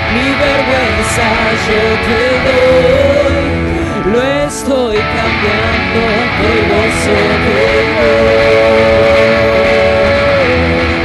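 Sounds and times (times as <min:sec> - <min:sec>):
drums: 0:00.0 - 0:11.0
strummed guitars: 0:00.0 - 0:11.0.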